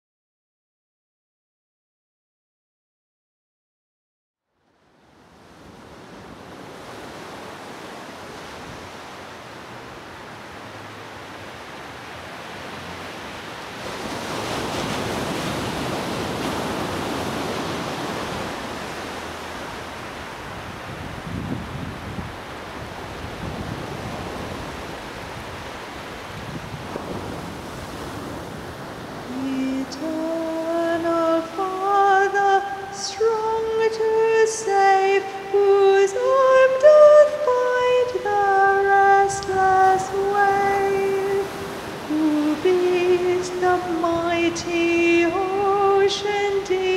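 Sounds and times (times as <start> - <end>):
waves breaking on a beach: 4.7 - 46.9.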